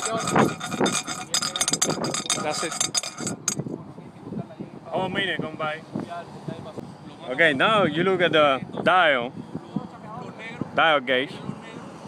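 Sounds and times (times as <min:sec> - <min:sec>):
faint handling of metal vessel: 0:00.0 - 0:03.6
steel balls clinking in metal vessel: 0:00.0 - 0:03.6.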